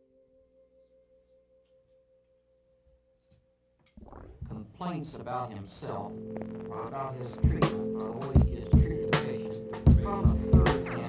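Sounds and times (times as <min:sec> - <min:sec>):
faint held musical tone: 0:00.0 - 0:11.0.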